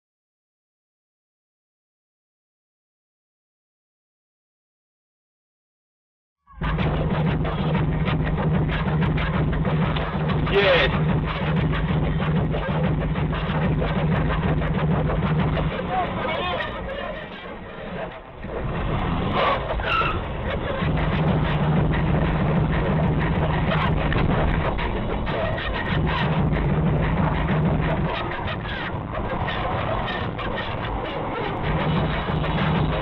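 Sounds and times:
music: 6.4s - 33.0s
indistinct voices: 6.6s - 33.0s.

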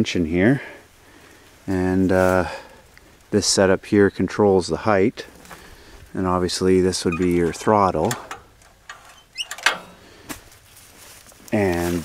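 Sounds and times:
light clicks on metal parts: 7.0s - 10.4s
short rising squeak: 9.0s - 10.0s.

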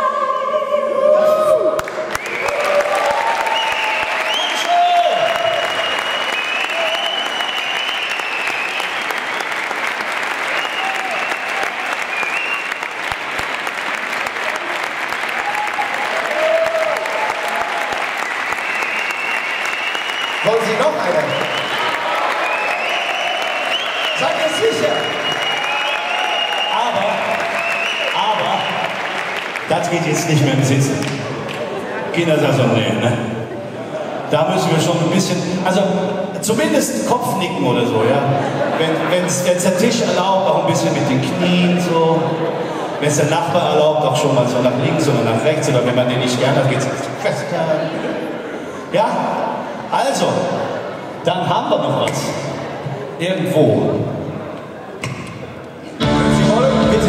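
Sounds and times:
audience applauding: 1.8s - 32.2s.

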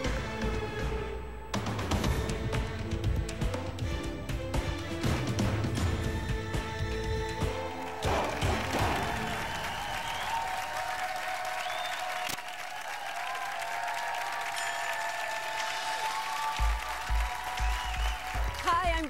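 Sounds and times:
game show theme music: 0.0s - 10.5s, 14.6s - 19.0s
studio audience applauding and cheering: 7.3s - 19.0s.

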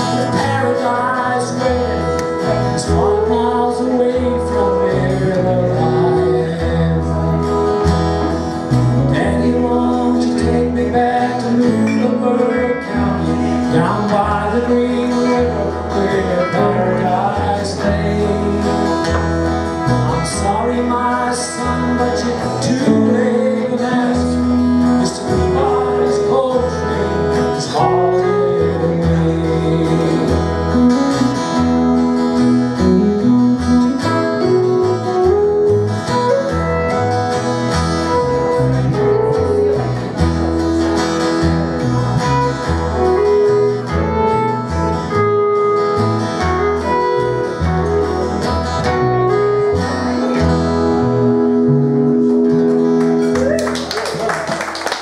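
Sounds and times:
strummed acoustic guitar: 0.0s - 53.4s
electric guitar: 0.0s - 55.0s
upright double bass: 0.0s - 55.0s.

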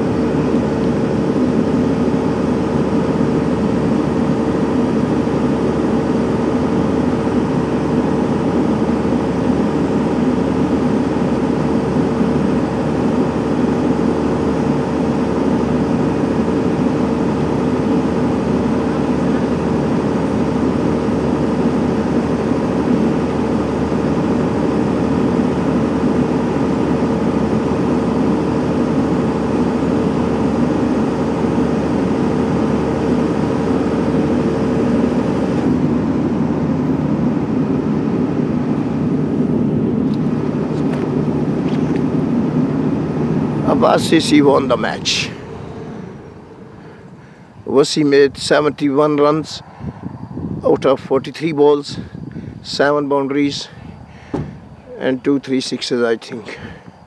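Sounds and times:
constant hum: 0.0s - 57.0s
low mechanical drone: 0.0s - 57.0s.

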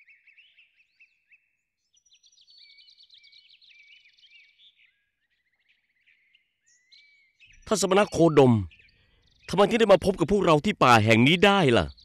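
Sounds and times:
faint birdsong chirps and whistles: 0.0s - 12.0s.

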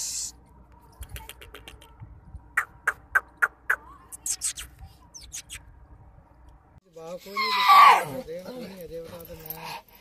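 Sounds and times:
person making kissing squeaks: 2.6s - 5.6s.

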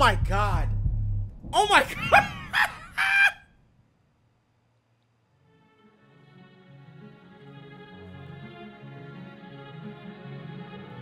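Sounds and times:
man yelping excitedly: 1.6s - 3.4s.

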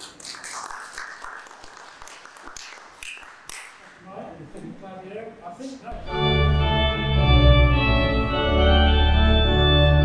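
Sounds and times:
audience applause: 0.0s - 4.0s.

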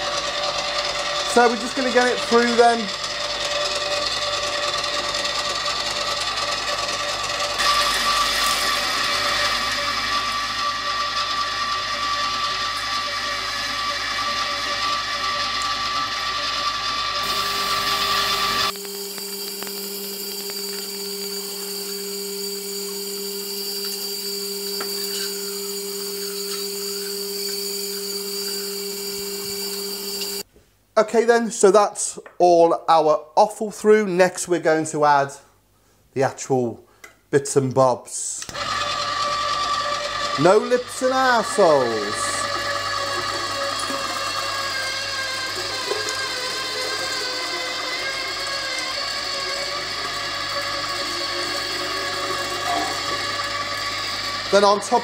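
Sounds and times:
electric meat mincer humming: 0.0s - 30.5s, 38.5s - 55.0s.

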